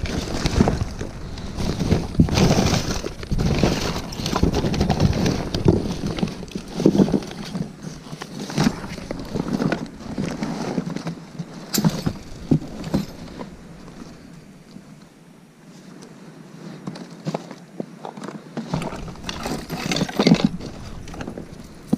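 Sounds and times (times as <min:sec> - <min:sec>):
rummaging through cardboard box: 0:00.0 - 0:14.3, 0:18.6 - 0:21.9.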